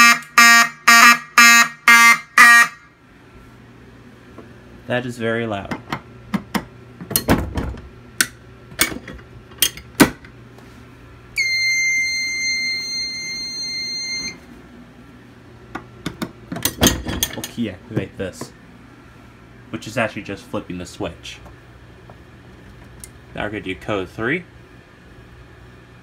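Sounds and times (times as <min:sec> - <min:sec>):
high electronic beep: 0:11.4 - 0:14.4.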